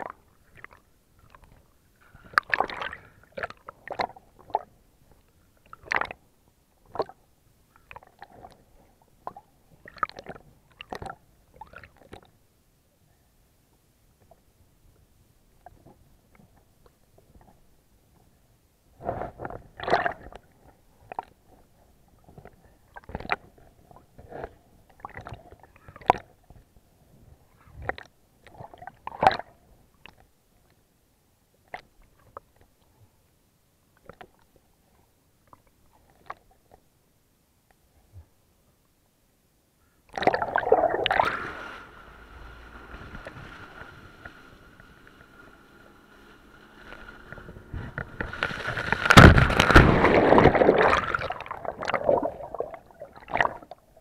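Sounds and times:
water gurgling and bubbling: 0:40.1 - 0:54.0
muffled underwater gurgling: 0:40.2 - 0:46.0.

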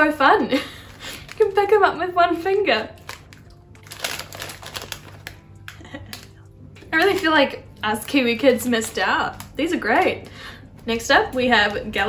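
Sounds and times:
foil crisp packet crackling: 0:00.5 - 0:10.3.

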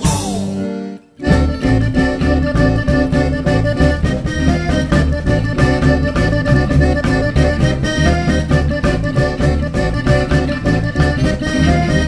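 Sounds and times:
accordion: 0:00.0 - 0:12.0
plucked upright double bass: 0:00.0 - 0:12.0.

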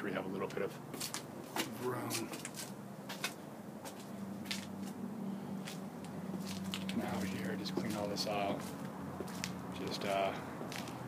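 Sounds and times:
steady low hum: 0:00.0 - 0:11.0
footsteps: 0:00.9 - 0:05.0, 0:05.6 - 0:11.0.

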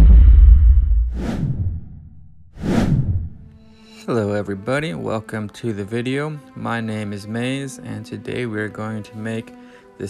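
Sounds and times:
low rumble: 0:00.0 - 0:03.5
whoosh sound effects: 0:02.6 - 0:03.5.

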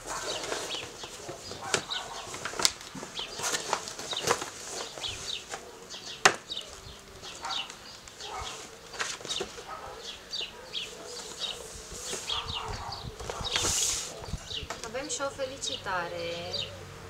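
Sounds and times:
plastic gift bag rustling: 0:00.0 - 0:10.0, 0:10.8 - 0:14.5
small birds chirping: 0:00.0 - 0:17.0.

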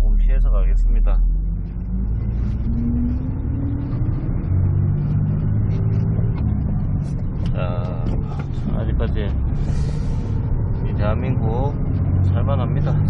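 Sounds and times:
truck engine accelerating: 0:00.0 - 0:13.0.

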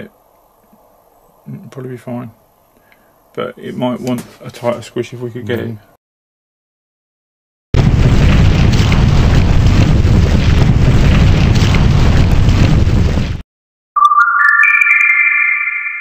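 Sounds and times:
noisy rumbling crash: 0:07.8 - 0:13.4
rising chime: 0:14.0 - 0:16.0.

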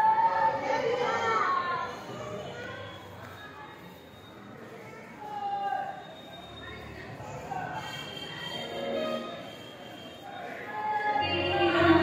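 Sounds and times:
low background murmur: 0:00.0 - 0:12.0.

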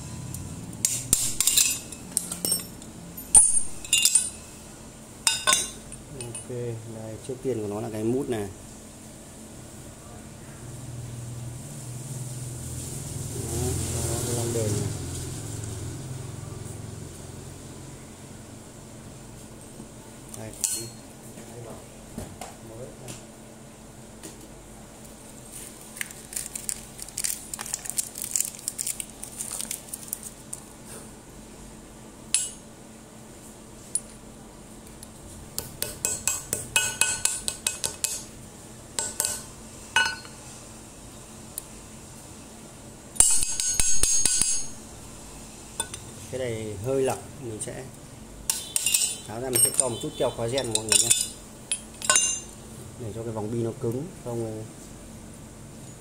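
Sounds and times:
metal parts clicking and clinking: 0:00.8 - 0:04.4, 0:48.6 - 0:52.5.

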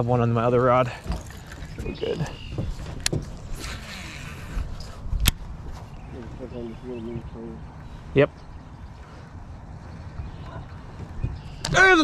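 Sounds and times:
wind rumble on microphone: 0:01.6 - 0:12.0.

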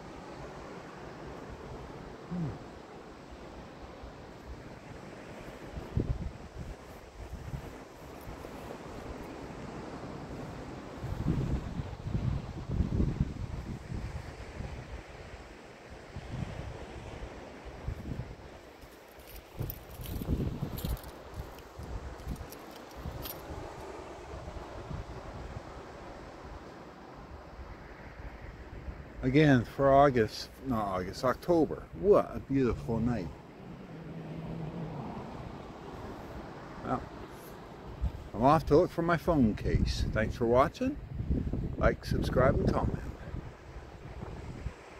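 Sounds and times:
wind buffeting microphone: 0:04.2 - 0:15.4, 0:16.0 - 0:18.6, 0:19.4 - 0:29.4, 0:30.9 - 0:44.9.

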